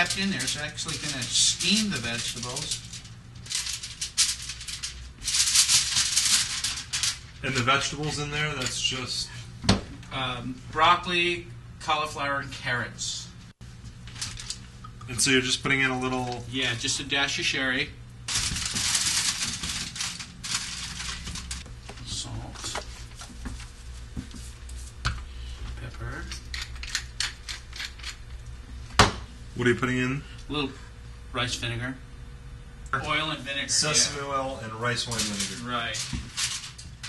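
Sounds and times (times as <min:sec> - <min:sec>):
aluminium foil crinkling: 0:00.0 - 0:08.9, 0:13.8 - 0:15.0, 0:18.3 - 0:25.0, 0:26.0 - 0:28.4, 0:34.8 - 0:37.0.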